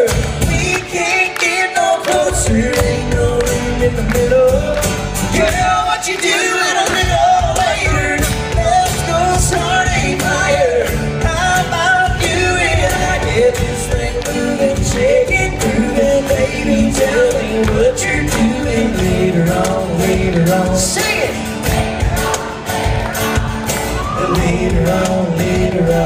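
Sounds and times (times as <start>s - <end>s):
strummed acoustic guitars: 0.0s - 26.0s.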